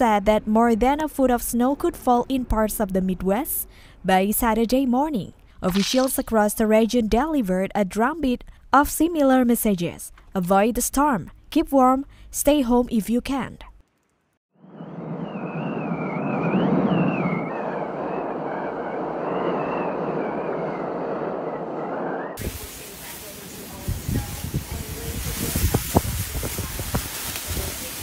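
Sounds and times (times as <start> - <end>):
wind rushing with whistle: 14.6 - 22.6, 23.9 - 27.7
wind gusts buffeting microphone: 23.7 - 28.0.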